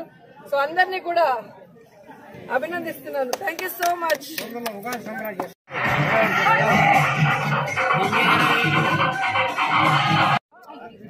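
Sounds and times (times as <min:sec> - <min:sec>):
crowd chatter: 0:00.0 - 0:11.0
music: 0:05.7 - 0:10.4.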